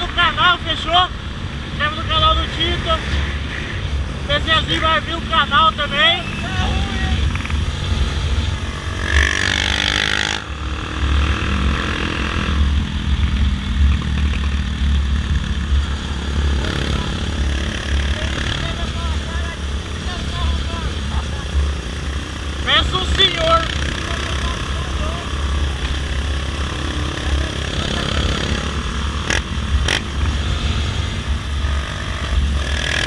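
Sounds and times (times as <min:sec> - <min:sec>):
motorcycle engine rumble: 0:01.1 - 0:33.0.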